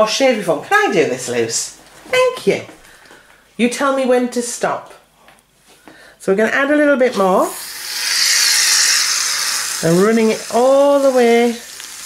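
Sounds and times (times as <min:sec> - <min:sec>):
aerosol can spraying hiss: 0:07.5 - 0:12.0.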